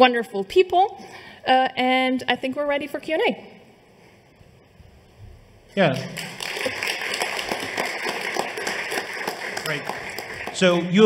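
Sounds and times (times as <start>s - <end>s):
audience applauding: 5.8s - 11.0s.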